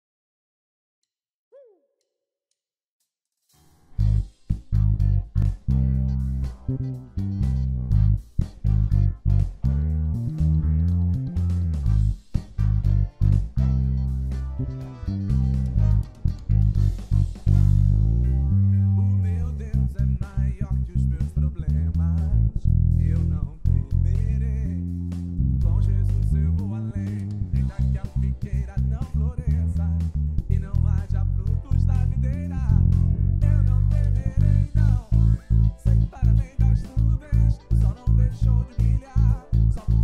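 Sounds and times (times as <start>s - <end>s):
electric bass playing bass line: 3.9s - 40.0s
band music with drums: 15.5s - 17.9s.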